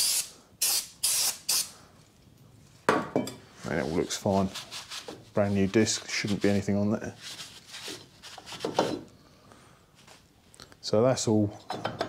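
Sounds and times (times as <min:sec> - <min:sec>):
aerosol spray can hissing: 0:00.0 - 0:01.7.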